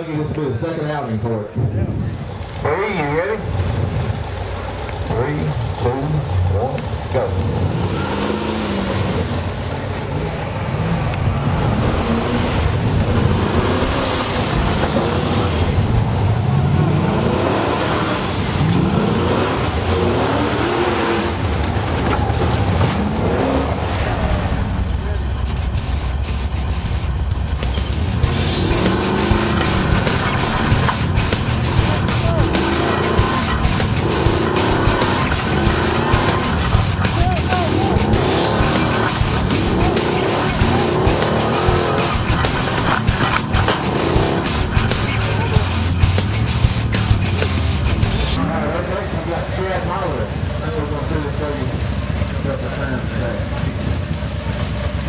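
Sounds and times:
buggy engine revving hard: 0:01.6 - 0:55.0.

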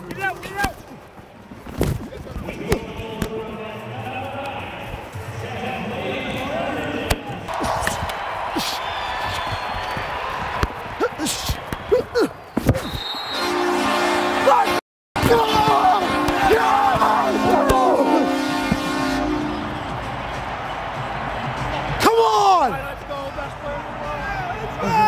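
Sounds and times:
arena crowd: 0:00.0 - 0:25.0
short squeaks: 0:12.5 - 0:13.4
sticks and ball knocking: 0:15.2 - 0:18.0.

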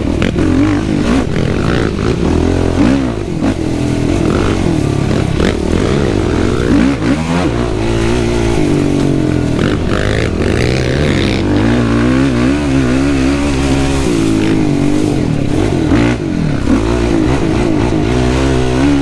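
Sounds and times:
quad engine revving: 0:00.0 - 0:19.0.

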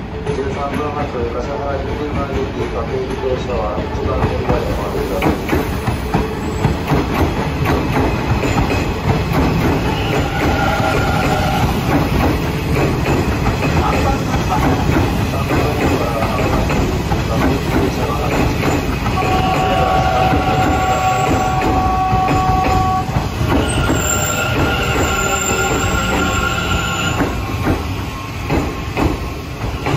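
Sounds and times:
train wheels rumbling on rails: 0:00.0 - 0:29.9
high wheel squeals: 0:18.7 - 0:29.0.

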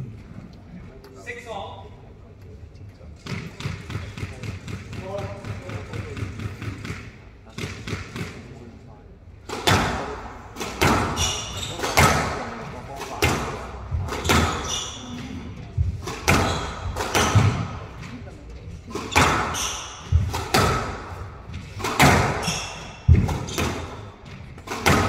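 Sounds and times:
squash ball smacks: 0:09.4 - 0:18.1, 0:18.9 - 0:25.0.

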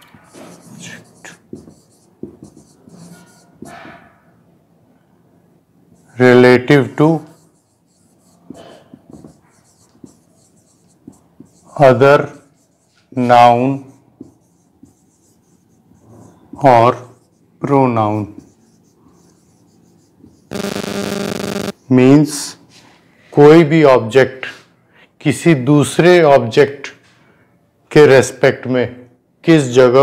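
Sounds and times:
marker writing on whiteboard: 0:00.0 - 0:04.1, 0:05.9 - 0:22.0.

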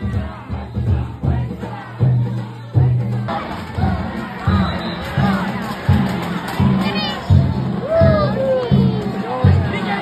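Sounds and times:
crowd shouting and cheering: 0:00.0 - 0:10.0
festival drum beat: 0:00.0 - 0:10.0.

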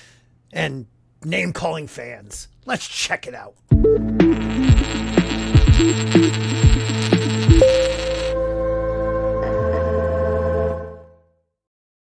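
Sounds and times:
intro jingle with sweeping bass notes: 0:03.8 - 0:10.4.

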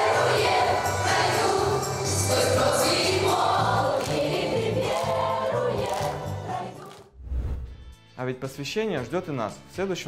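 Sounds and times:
children's choir singing: 0:00.0 - 0:07.0.

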